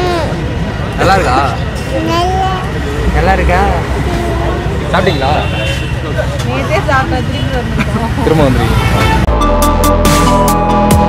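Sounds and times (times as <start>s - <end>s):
street traffic rumble: 0.0s - 11.0s
people talking: 0.9s - 9.2s.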